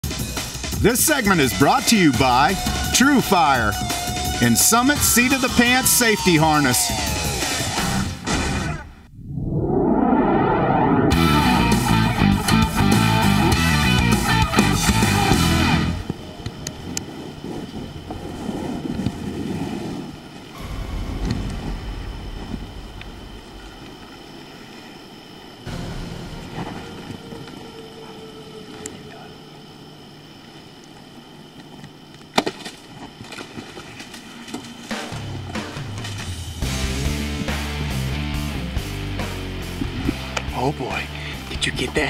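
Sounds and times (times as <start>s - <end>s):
faint hiss: 16.1s - 31.6s
microphone handling rumble: 17.1s - 27.7s.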